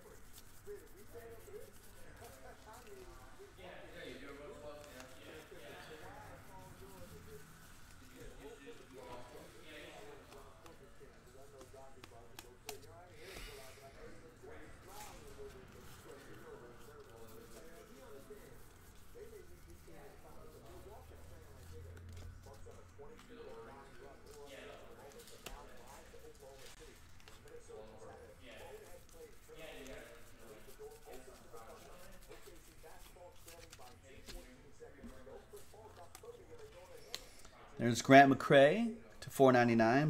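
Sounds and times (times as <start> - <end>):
indistinct background speech: 0.0 - 37.9
cards being flipped through: 6.3 - 13.0.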